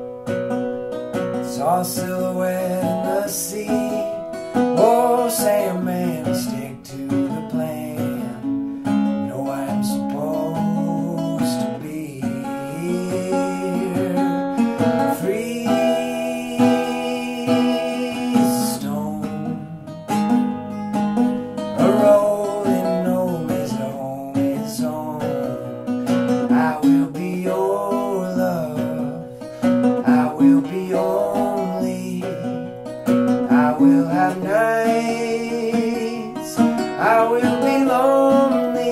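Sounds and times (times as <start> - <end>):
acoustic guitar playing: 0.0 - 38.9.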